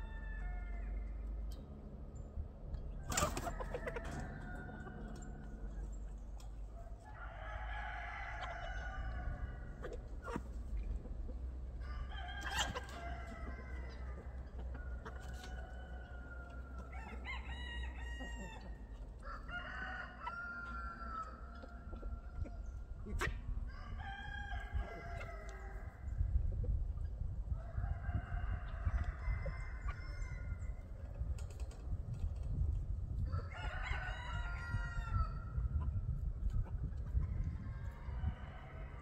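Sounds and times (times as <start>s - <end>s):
roosters crowing: 0.0s - 1.9s, 2.8s - 26.5s, 27.4s - 32.0s, 33.1s - 36.2s, 37.1s - 39.0s
hens clucking: 2.6s - 7.6s, 8.2s - 23.7s.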